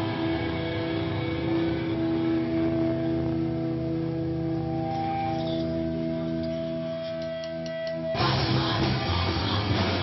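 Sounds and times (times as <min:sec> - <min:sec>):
distorted electric guitars droning: 0:00.0 - 0:10.0.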